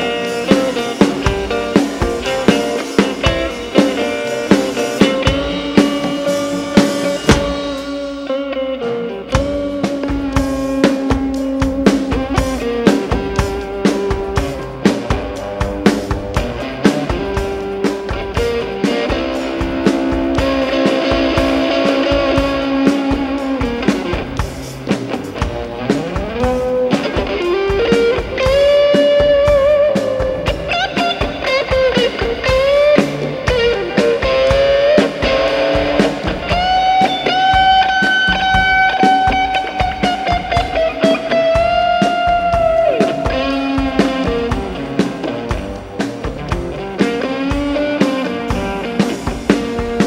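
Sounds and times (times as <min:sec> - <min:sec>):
electric guitar solo: 0:00.0 - 0:50.0.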